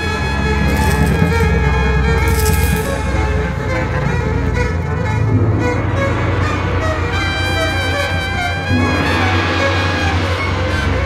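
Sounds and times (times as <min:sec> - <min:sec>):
jazz ensemble brass: 0:00.0 - 0:11.0
steady low bass: 0:00.0 - 0:11.0.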